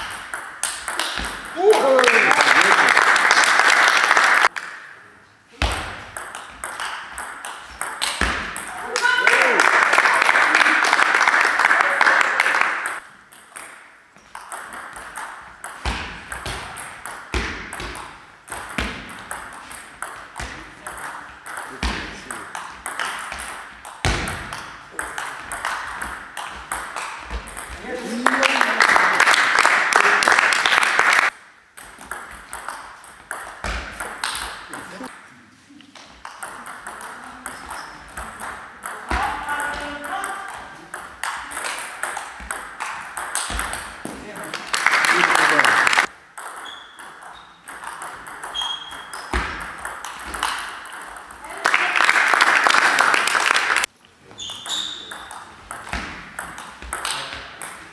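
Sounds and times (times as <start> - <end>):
person shouting: 1.6 - 2.3, 8.8 - 9.6.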